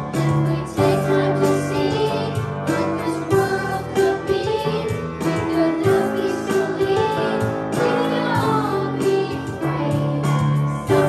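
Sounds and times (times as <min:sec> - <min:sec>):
children singing in unison: 0:00.0 - 0:11.0
instrumental accompaniment: 0:00.0 - 0:11.0.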